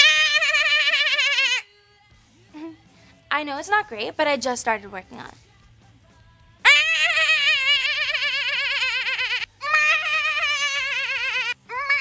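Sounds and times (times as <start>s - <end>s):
woman imitating lamb bleat: 6.7s - 12.0s.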